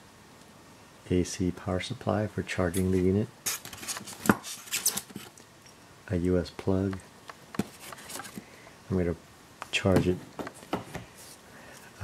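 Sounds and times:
foam packing rustle: 0:02.7 - 0:05.4, 0:07.6 - 0:08.4.

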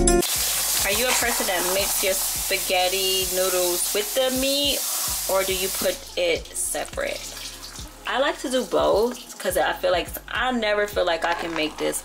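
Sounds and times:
pasta sizzling in a pot: 0:00.2 - 0:09.6.

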